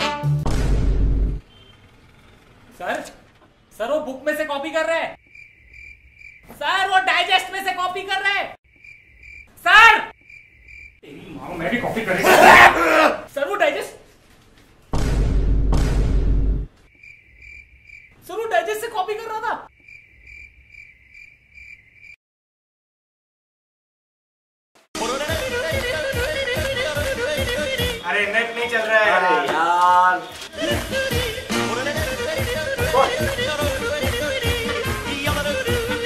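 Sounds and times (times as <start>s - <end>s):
loud noisy hit: 0.4s - 1.4s
cricket chirping: 5.2s - 8.0s, 8.6s - 11.4s, 16.8s - 22.2s
man's voice: 25.0s - 36.0s.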